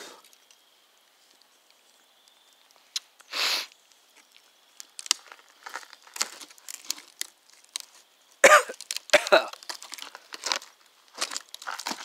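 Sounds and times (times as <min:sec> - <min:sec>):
campfire coals crackling: 0:00.0 - 0:12.0
person coughing: 0:08.4 - 0:09.6.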